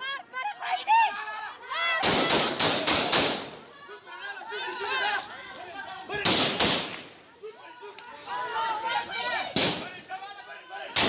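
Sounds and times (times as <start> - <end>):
women shouting: 0.0 - 2.6, 3.6 - 5.9, 7.3 - 9.6.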